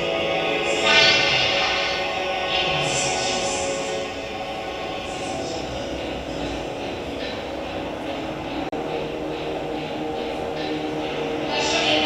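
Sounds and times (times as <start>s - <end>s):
droning sustained tones: 0.0s - 12.0s.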